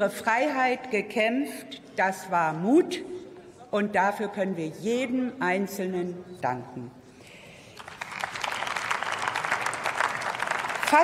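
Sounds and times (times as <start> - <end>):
audience applause: 7.8 - 11.0.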